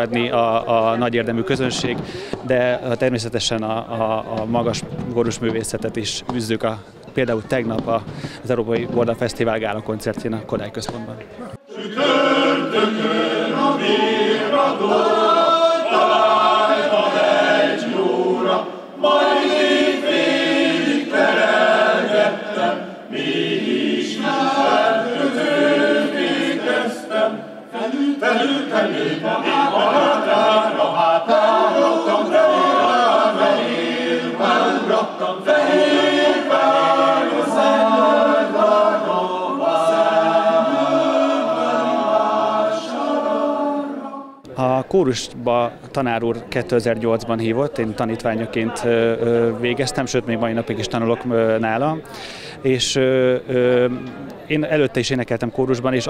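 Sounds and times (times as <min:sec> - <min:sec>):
male choir singing a cappella: 0:11.6 - 0:44.5.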